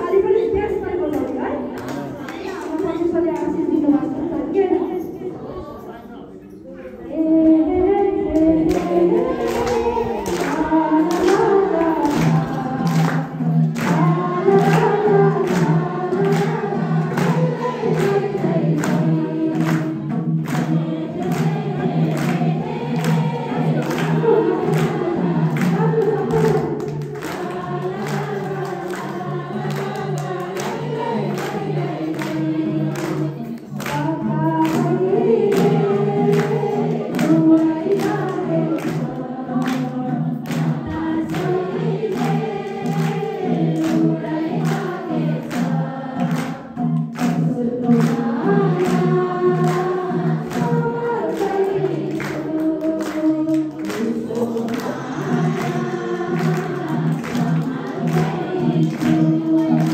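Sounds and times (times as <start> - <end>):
women singing into microphones: 0.0 - 6.0, 6.9 - 59.9
congregation singing along: 0.0 - 59.9
steady rhythmic beat: 7.5 - 59.9.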